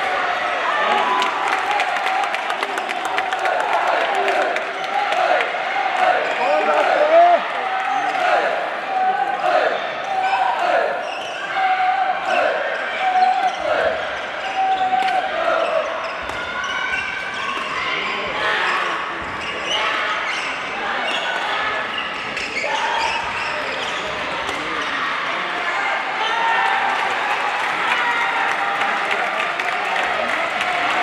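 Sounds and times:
shouted voices in hall: 0:00.0 - 0:31.0.

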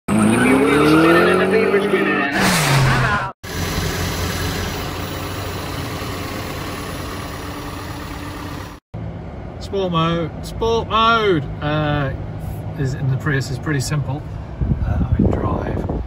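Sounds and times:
engine revving and speeding past: 0:00.1 - 0:03.0.

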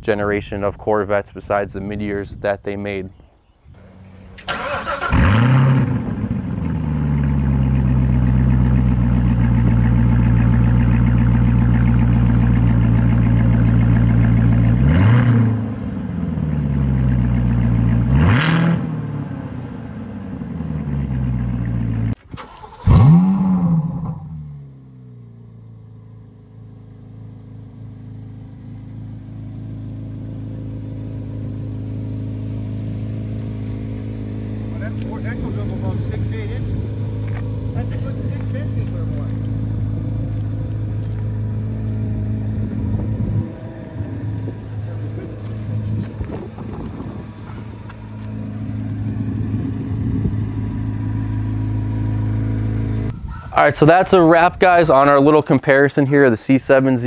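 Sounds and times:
engine revs blipped: 0:03.8 - 0:54.0
car engine starting and idling: 0:03.8 - 0:57.0.

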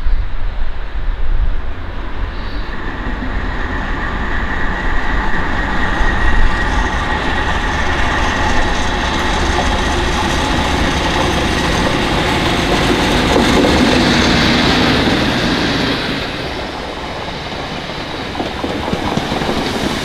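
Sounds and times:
diesel locomotive passing: 0:00.0 - 0:20.0
steady high whistle: 0:02.2 - 0:09.2.

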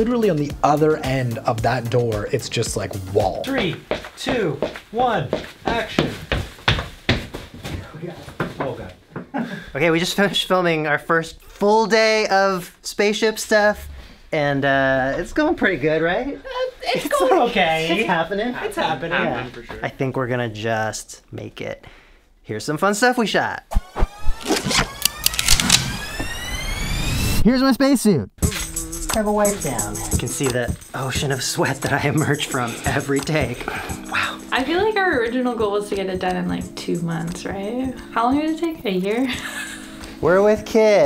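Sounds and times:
footsteps thudding on floor: 0:03.6 - 0:09.3
whine rising in pitch: 0:23.7 - 0:27.4.

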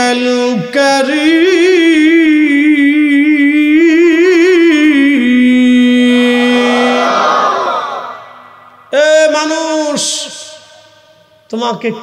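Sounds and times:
man singing long note: 0:01.0 - 0:07.1
crowd shouting: 0:06.1 - 0:09.0.

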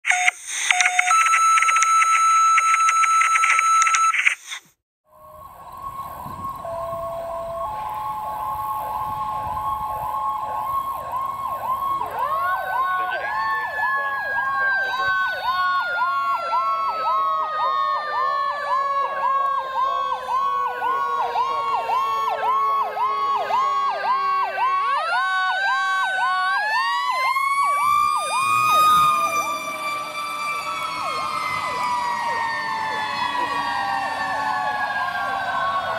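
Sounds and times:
electronic siren sweeping: 0:00.0 - 0:35.9
mechanical siren winding: 0:00.1 - 0:04.6.

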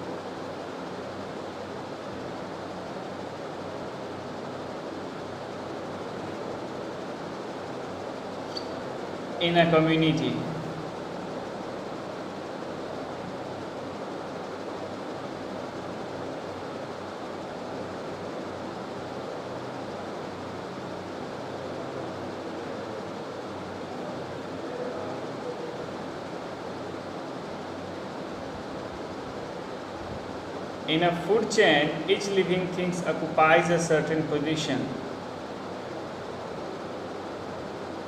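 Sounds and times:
room noise hiss: 0:00.0 - 0:38.0.

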